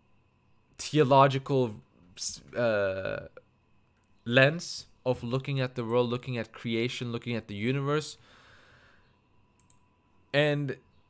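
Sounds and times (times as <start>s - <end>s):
low room hum: 0.0s - 11.0s
faint breath out: 8.2s - 9.2s
soft clicks: 9.5s - 9.9s.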